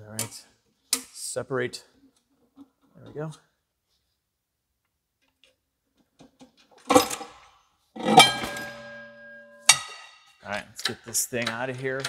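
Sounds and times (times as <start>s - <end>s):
ringing metal clanks: 8.0s - 10.3s.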